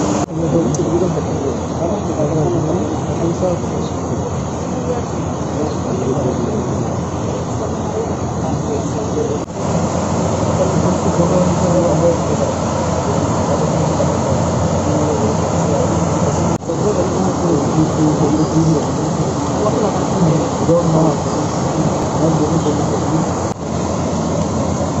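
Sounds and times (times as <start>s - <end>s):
crowd chatter: 0.0s - 25.0s.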